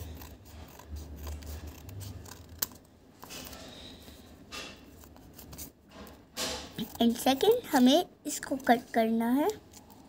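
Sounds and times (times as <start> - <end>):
scissors cutting paper: 0.0 - 3.6, 5.0 - 7.6.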